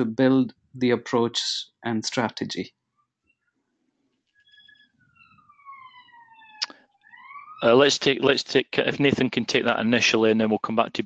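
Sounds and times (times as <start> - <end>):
faint siren wailing: 4.4 - 8.0.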